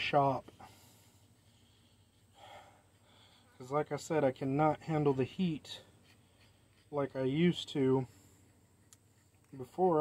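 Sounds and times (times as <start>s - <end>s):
man breathing out: 2.3s - 3.5s.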